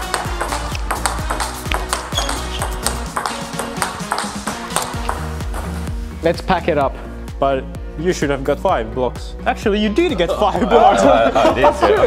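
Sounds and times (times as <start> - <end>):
background music with bass: 0.0 - 12.0
table tennis ball clicking: 0.1 - 5.7.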